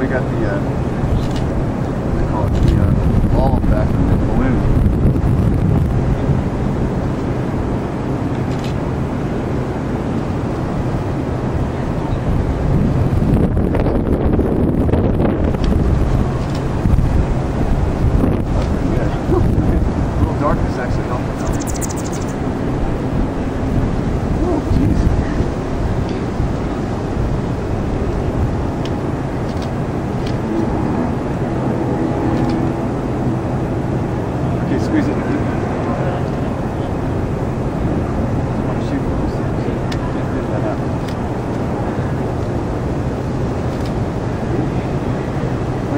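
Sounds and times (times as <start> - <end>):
wind on microphone: 0.0 - 45.9.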